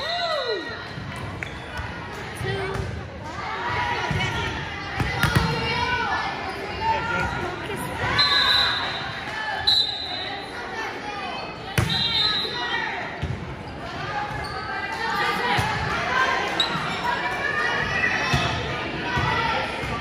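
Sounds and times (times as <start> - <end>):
people calling and chattering: 0.0 - 20.0.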